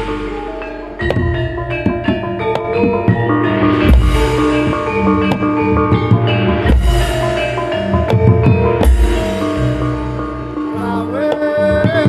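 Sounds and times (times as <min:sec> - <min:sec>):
drum strokes: 0:00.0 - 0:12.0
ringing metallophone notes: 0:00.0 - 0:12.0.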